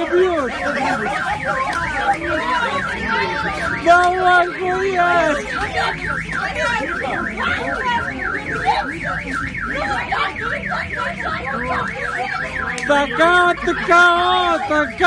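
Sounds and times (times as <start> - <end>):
car alarm warbling: 0.0 - 15.0
people shouting: 0.0 - 15.0.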